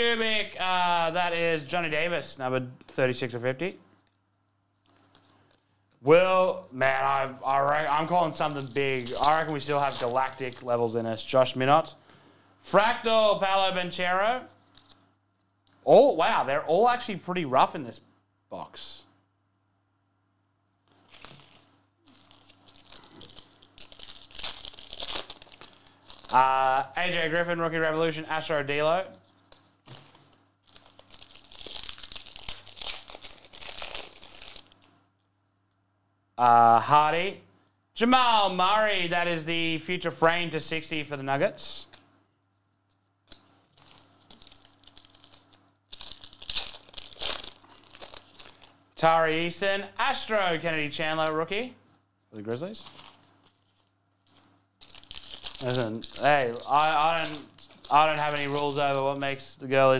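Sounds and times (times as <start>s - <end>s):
foil wrapper crinkling: 7.5s - 11.0s, 20.9s - 27.6s, 29.4s - 35.0s, 43.3s - 48.9s, 52.7s - 59.4s
foil wrapper tearing: 7.6s - 10.8s, 21.0s - 27.2s, 29.8s - 34.9s, 43.3s - 48.8s, 52.8s - 59.2s.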